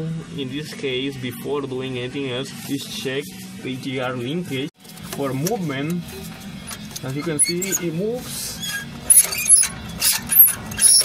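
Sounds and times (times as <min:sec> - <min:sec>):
metallic clicks and scrapes: 0:04.9 - 0:11.0.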